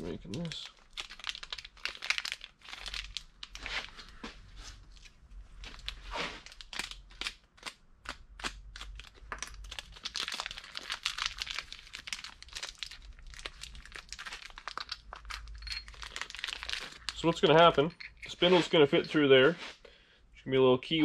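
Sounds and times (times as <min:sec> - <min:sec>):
plastic bag crinkling: 0:00.0 - 0:04.2, 0:04.8 - 0:07.3, 0:08.8 - 0:19.2.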